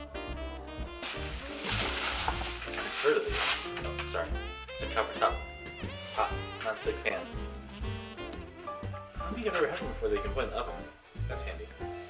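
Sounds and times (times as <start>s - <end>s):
swing music: 0.0s - 12.0s
tissue paper rustling: 1.0s - 4.2s.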